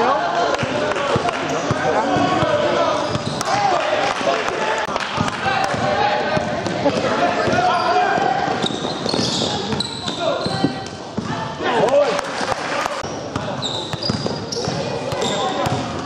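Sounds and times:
basketball bouncing on hall floor: 1.1s - 3.5s, 5.0s - 11.4s, 13.2s - 16.0s.

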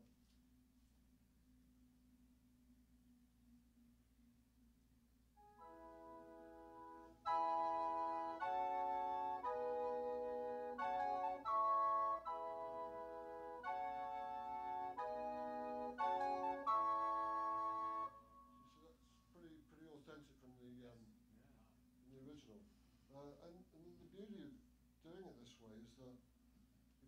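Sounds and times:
keyboard organ chords: 5.4s - 18.4s.

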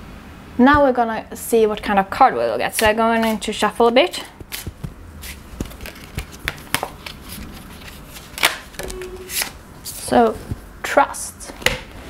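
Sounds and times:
cards clicking and tapping: 4.2s - 5.0s, 5.6s - 9.5s
cards swishing: 4.4s - 9.6s.

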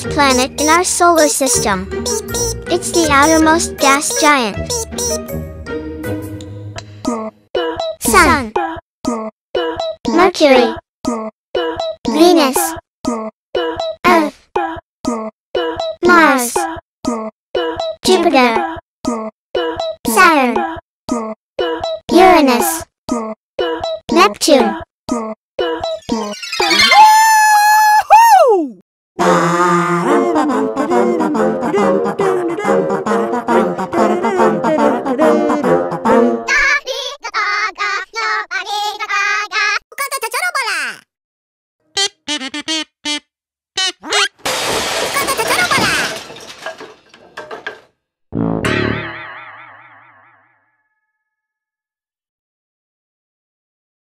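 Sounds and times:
music: 0.0s - 7.4s, 29.2s - 36.5s
cartoon whoop: 26.6s - 28.8s
cartoon boing sound effect: 48.4s - 51.0s.

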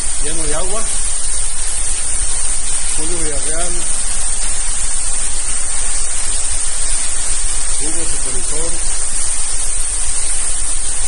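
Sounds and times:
heavy rain and floodwater rushing: 0.0s - 1.5s, 2.2s - 9.5s.

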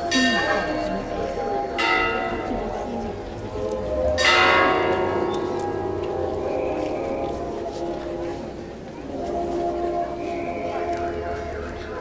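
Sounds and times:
church bell ringing: 0.0s - 8.4s.

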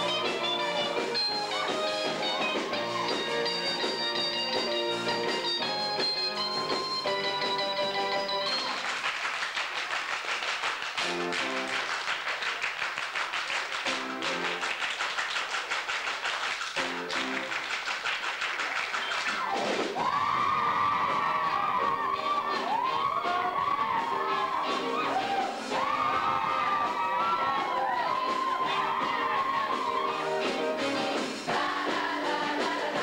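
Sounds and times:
live band music: 0.0s - 8.9s, 11.0s - 12.0s, 13.7s - 14.8s, 16.6s - 17.7s, 19.0s - 33.0s
rhythmic clapping: 0.0s - 33.0s
crowd cheering and whooping: 1.4s - 4.0s, 19.0s - 30.8s.

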